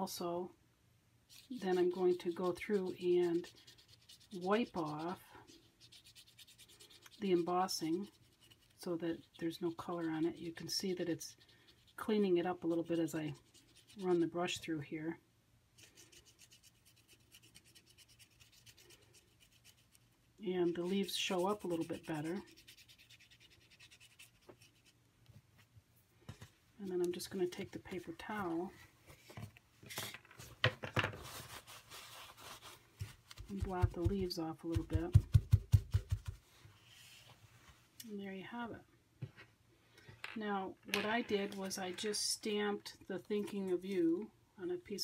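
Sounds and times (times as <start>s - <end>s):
brush scrubbing paper: 1.3s - 14.6s, 15.8s - 25.0s, 31.2s - 36.4s
paper towel patting paper: 31.2s - 36.5s.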